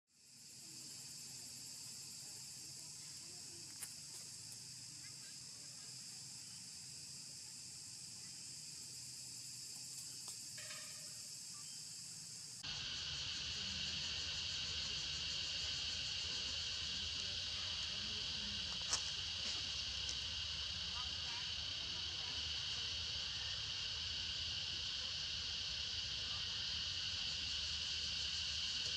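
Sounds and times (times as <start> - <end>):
insect chorus: 0.1 - 28.9.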